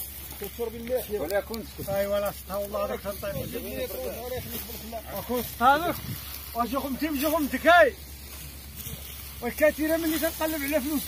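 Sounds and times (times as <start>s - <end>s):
steady background hiss: 0.0s - 11.0s
people talking indistinctly: 0.2s - 11.0s.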